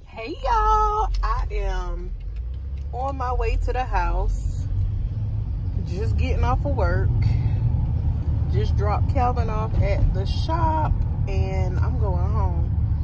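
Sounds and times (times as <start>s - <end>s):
woman speaking: 0.0s - 2.1s, 2.9s - 4.6s, 5.8s - 7.5s, 8.5s - 12.7s
car cabin rumble: 0.0s - 13.0s.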